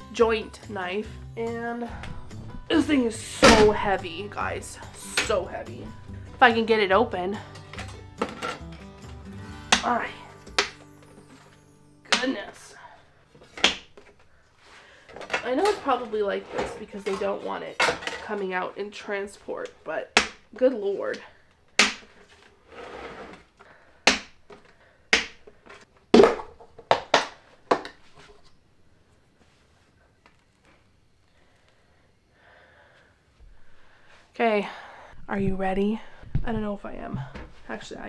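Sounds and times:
soft background music: 0.0 - 14.4
plastic lid snapping off bucket: 26.2 - 28.0.

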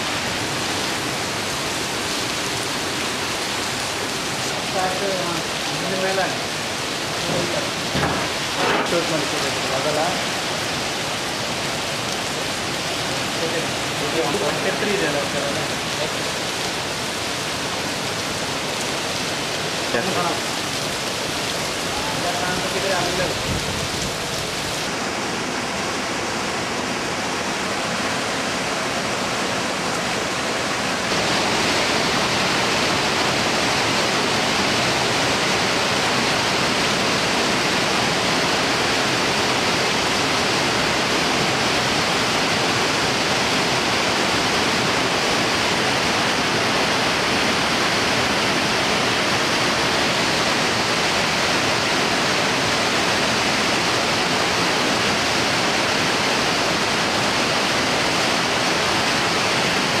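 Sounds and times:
waterfall rushing: 0.0 - 60.0.

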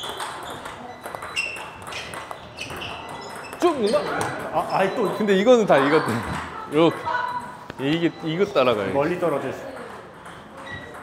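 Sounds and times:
table tennis balls clicking: 0.0 - 11.0.

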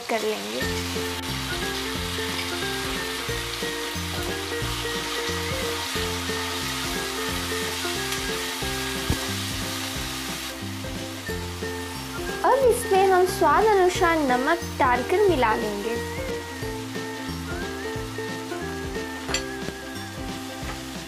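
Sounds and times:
paste sizzling in hot oil: 0.0 - 21.0
light background melody: 0.1 - 21.0.

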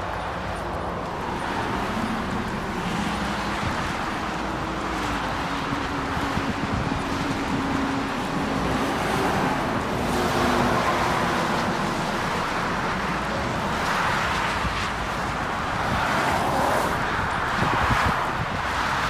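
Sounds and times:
truck engine hum: 0.0 - 18.5
highway traffic rushing: 0.0 - 19.0.

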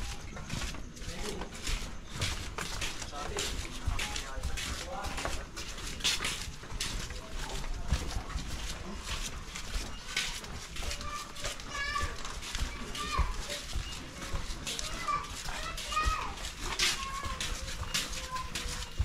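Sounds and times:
footsteps on pavement: 0.0 - 19.0.

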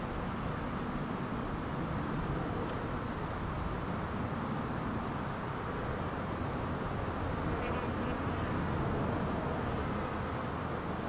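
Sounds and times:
honey bees buzzing: 7.4 - 10.2.

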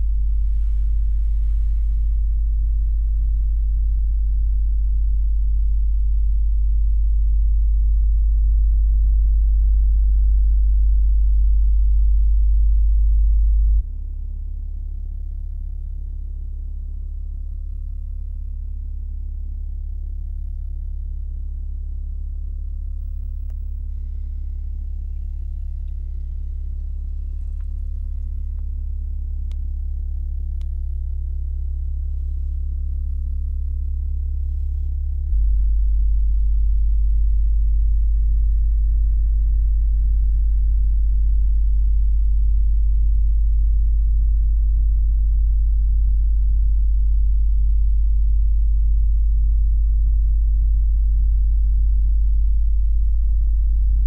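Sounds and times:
deep electronic hum: 0.0 - 54.0.

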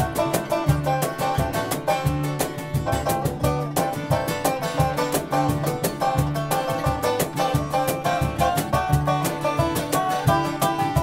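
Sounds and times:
fiddle: 0.0 - 11.0
rapid banjo picking: 0.0 - 11.0
strummed acoustic guitar: 0.0 - 11.0.

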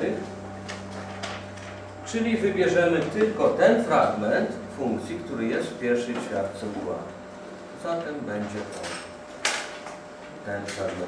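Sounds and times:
electrical mains hum: 0.0 - 11.0.

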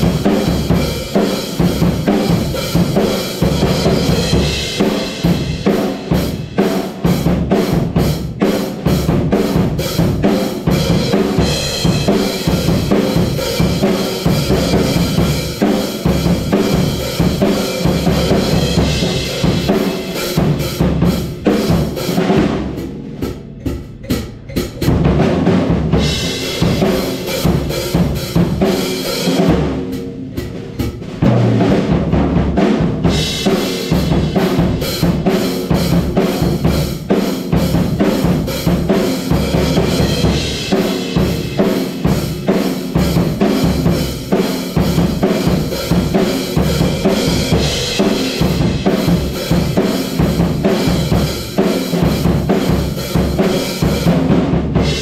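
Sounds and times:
rock drum groove: 0.0 - 55.0
cymbals crashing: 10.7 - 31.2.

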